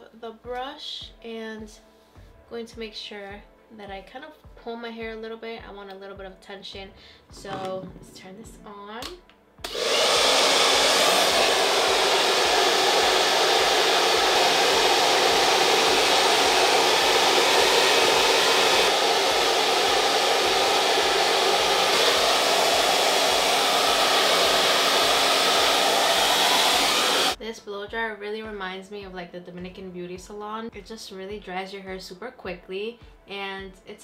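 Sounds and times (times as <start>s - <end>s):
hair dryer running: 9.6s - 27.4s.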